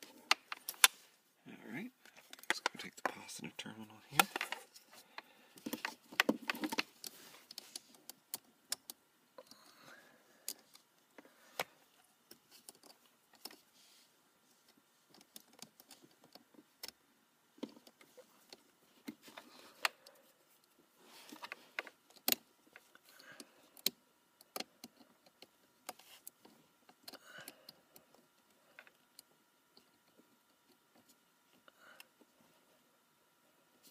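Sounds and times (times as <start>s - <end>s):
wires rustling: 4.0s - 32.6s.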